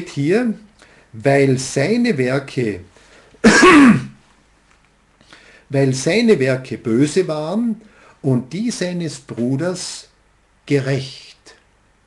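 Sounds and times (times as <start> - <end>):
man clearing his throat: 3.4 - 4.2.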